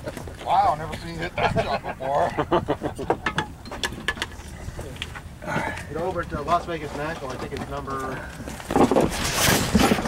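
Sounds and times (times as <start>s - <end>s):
people laughing: 1.1s - 3.6s.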